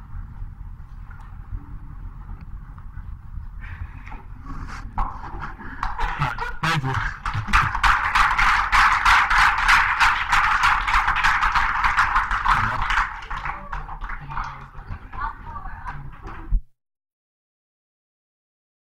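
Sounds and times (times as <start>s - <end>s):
audience applauding: 5.8s - 15.3s.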